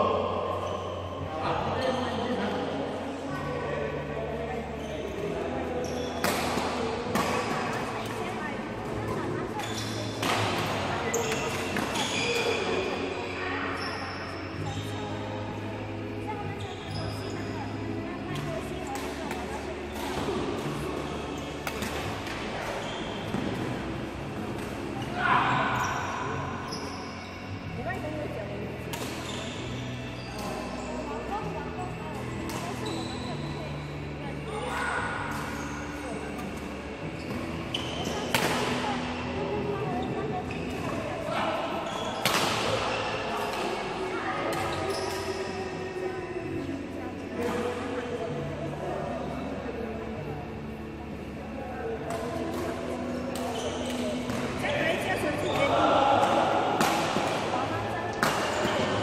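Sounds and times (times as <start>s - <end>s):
background voices in echoing hall: 0.0s - 59.0s.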